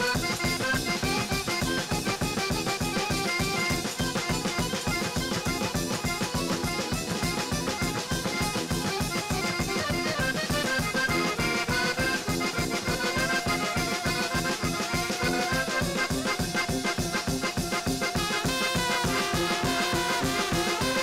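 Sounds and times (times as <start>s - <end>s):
band playing lively tune: 0.0s - 21.0s
fiddle melody: 0.0s - 21.0s.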